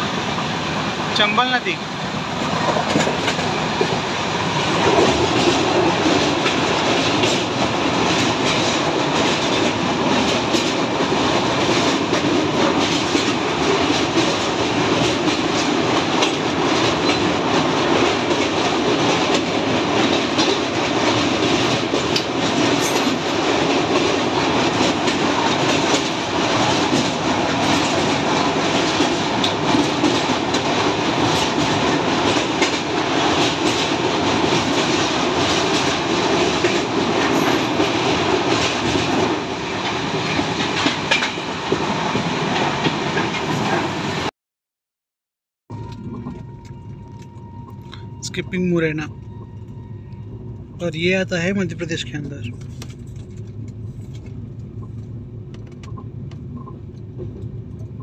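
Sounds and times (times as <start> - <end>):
fast rail clicking: 0.0 - 44.3
train wheels rumbling on rail: 0.0 - 44.3, 45.7 - 58.0.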